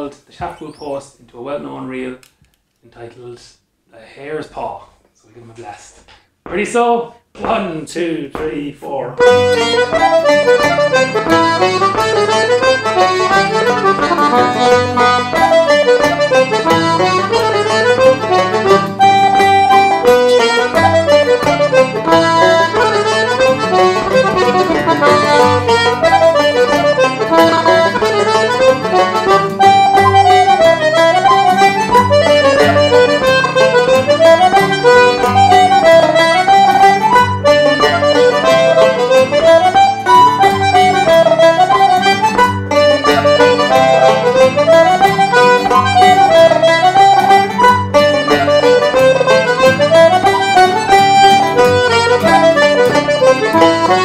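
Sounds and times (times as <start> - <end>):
button accordion: 0.4 - 1.0, 9.2 - 54.0
strummed guitar chords: 9.2 - 54.0
tenor banjo: 9.2 - 54.0.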